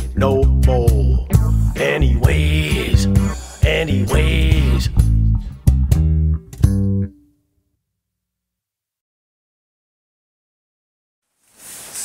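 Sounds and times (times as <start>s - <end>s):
funk band playing: 0.0s - 7.1s.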